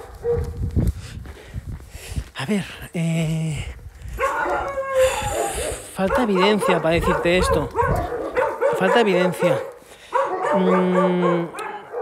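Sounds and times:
dog howling: 4.2s - 12.0s.

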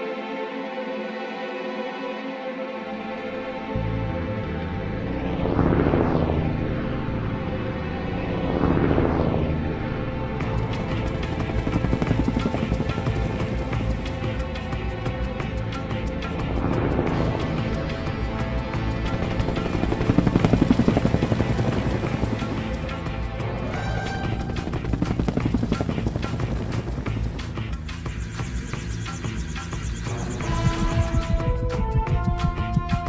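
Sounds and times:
background music: 0.0s - 33.0s
helicopter rotor beating: 10.3s - 33.0s.

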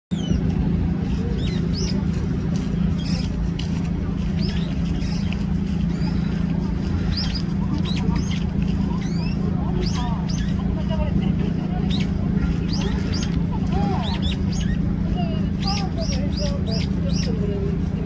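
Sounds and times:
bird squeaky calls: 0.1s - 17.5s
low mechanical hum: 0.1s - 18.0s.

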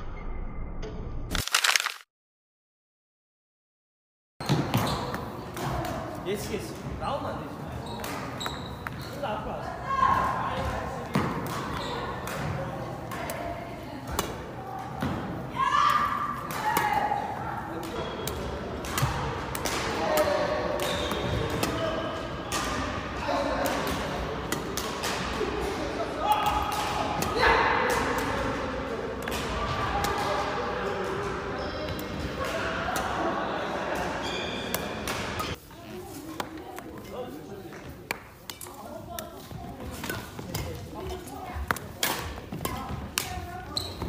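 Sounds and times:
rackets hitting shuttlecocks: 11.0s - 13.4s, 22.4s - 30.5s, 38.0s - 44.0s.

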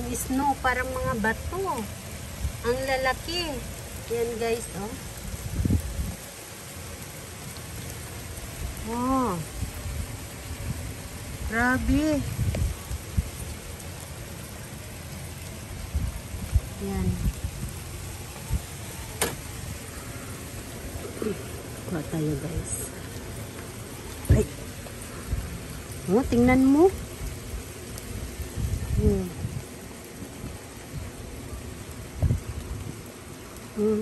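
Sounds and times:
hail pattering on ground: 0.0s - 34.0s.

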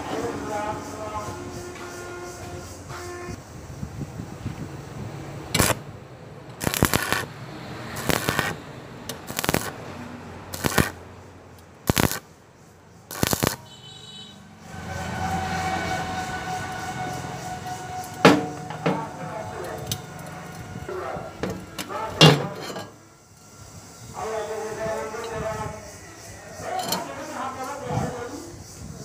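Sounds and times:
welding arc crackling bursts: 5.5s - 5.9s, 6.6s - 9.8s, 10.5s - 11.0s, 11.8s - 12.3s, 13.0s - 13.8s.

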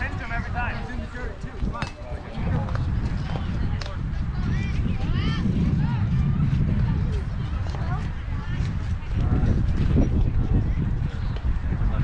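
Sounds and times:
children calling and chattering: 0.0s - 11.8s
wind rumbling on microphone: 0.0s - 12.0s.

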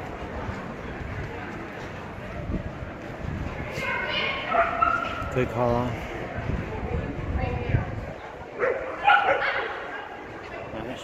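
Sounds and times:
dog barking in high yips: 4.5s - 5.2s, 8.6s - 9.8s.

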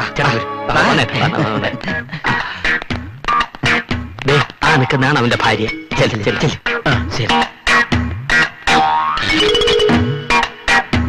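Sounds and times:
comic plucked music: 0.0s - 2.1s, 8.4s - 10.9s.

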